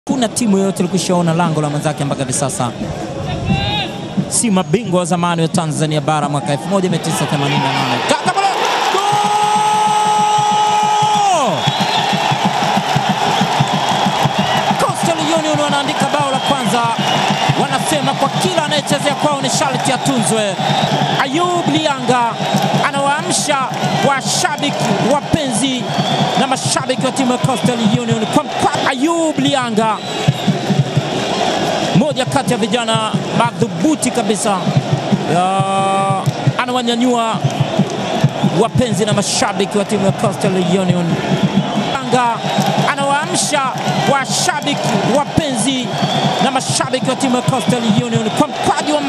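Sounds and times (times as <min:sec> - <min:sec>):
stadium crowd cheering: 0:00.1 - 0:49.0
fast steady beat: 0:03.5 - 0:05.8, 0:06.8 - 0:49.0
long held shout: 0:07.6 - 0:17.7.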